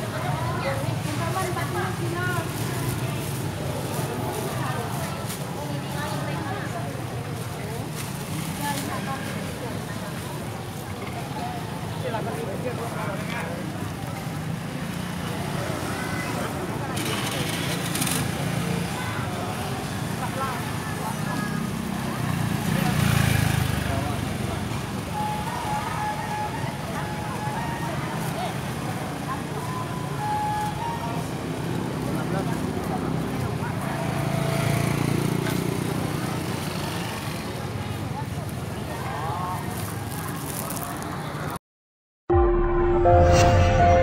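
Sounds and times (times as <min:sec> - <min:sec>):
motorbikes passing: 0:00.0 - 0:41.6
murmur of voices: 0:00.0 - 0:41.6.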